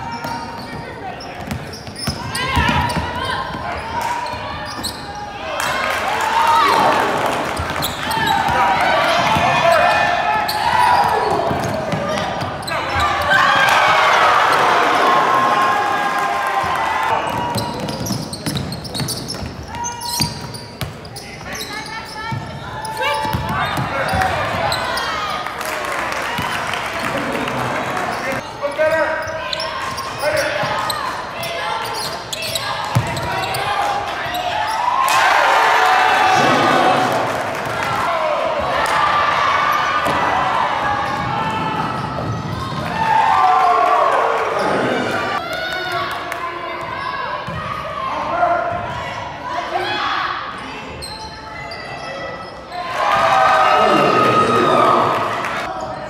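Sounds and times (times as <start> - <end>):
shoe squeaks: 0.0 - 5.2, 7.6 - 8.5, 17.3 - 25.2, 28.1 - 33.7, 50.6 - 52.9
voices in a hall: 0.0 - 56.0
people talking: 53.7 - 56.0.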